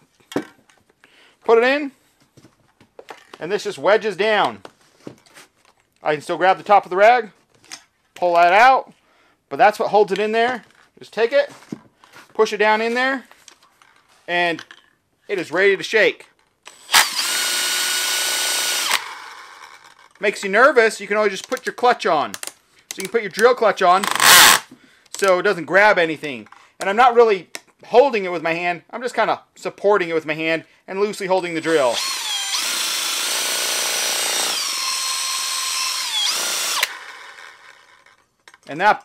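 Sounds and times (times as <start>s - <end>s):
cordless drill whining: 16.7s - 20.1s, 24.0s - 24.8s, 31.4s - 38.2s.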